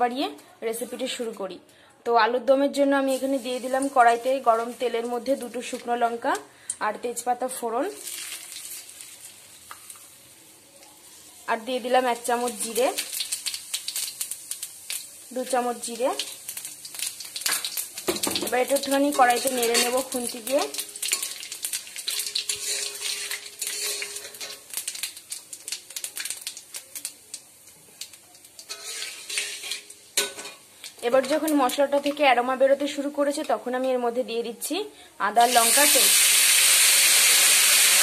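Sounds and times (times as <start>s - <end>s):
seeds sizzling in hot oil: 3.0s - 6.8s, 7.5s - 34.1s, 35.3s - 38.0s
metal spatula scraping pan: 19.1s - 24.8s, 28.6s - 30.7s.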